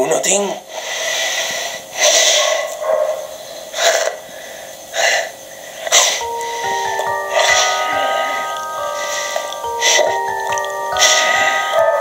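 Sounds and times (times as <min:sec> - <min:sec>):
man's hissing breath bursts: 0:00.7 - 0:02.6, 0:03.4 - 0:12.0
music with chiming notes: 0:06.2 - 0:12.0.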